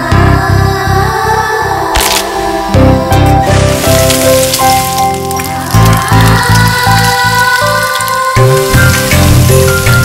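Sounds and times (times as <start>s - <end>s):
water crackling in hot pan: 3.4s - 10.0s.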